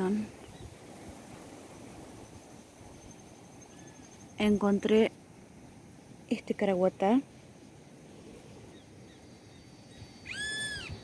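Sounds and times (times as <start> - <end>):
high-pitched animal call: 10.2 - 11.0.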